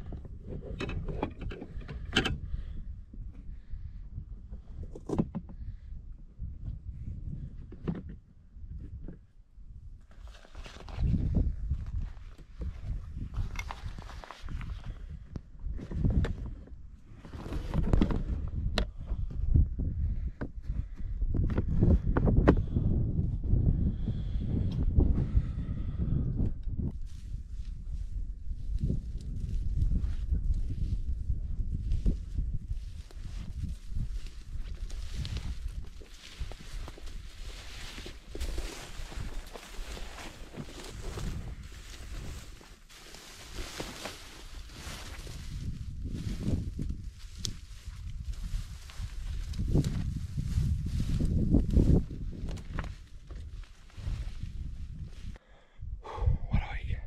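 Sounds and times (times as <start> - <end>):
clothing and gear rustling: 10.1 - 15.0, 27.1 - 55.4
footsteps on brushy ground: 27.0 - 55.4.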